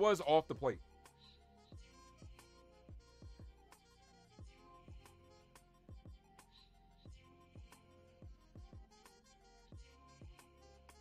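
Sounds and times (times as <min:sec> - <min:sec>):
faint music with low beat: 0:00.0 - 0:11.0.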